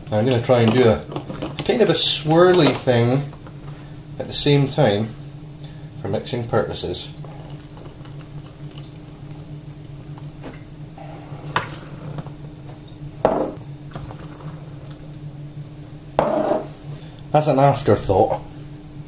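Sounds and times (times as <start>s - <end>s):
low hum: 1.0s - 17.3s.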